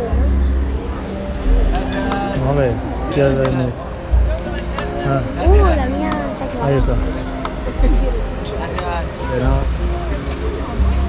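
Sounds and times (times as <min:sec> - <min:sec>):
voices of people: 0:00.0 - 0:11.0.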